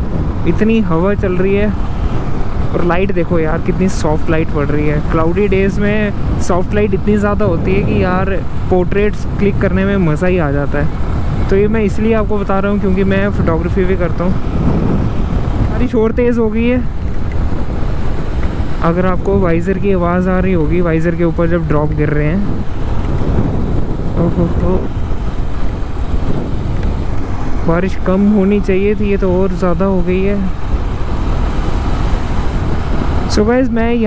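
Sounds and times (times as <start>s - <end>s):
wind noise on microphone: 0.0s - 34.0s.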